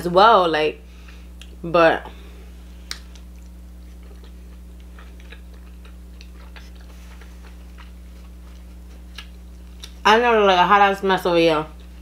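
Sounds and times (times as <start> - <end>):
steady low hum: 0.0 - 12.0
wet mouth clicks of chewing: 2.8 - 10.0.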